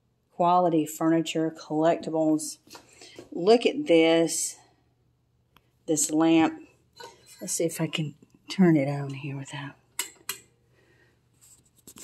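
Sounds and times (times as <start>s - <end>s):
faint handling sounds: 11.1s - 12.0s.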